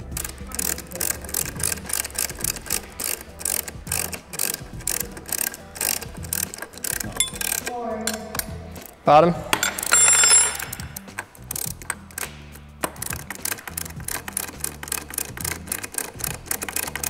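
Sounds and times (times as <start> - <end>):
ratchet wrench clicking: 0.0 - 8.9, 9.5 - 17.0.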